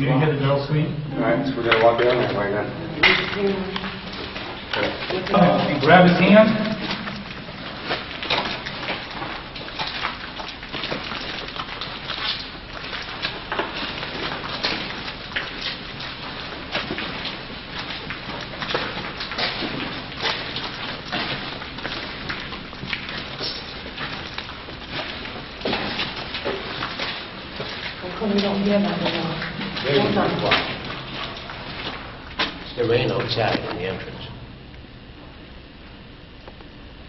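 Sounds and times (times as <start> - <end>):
footsteps on gritty floor: 1.6 - 33.9
clothes and backpacks rustling: 1.9 - 33.8.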